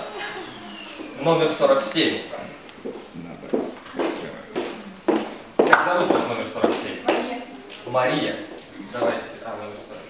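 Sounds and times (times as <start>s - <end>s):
low voices: 0.0s - 10.0s
high-heeled footsteps on wooden floor: 2.8s - 7.8s.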